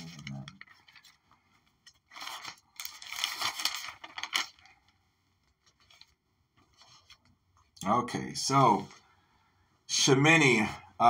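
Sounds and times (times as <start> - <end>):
wrapper crinkling: 0.0 - 6.2.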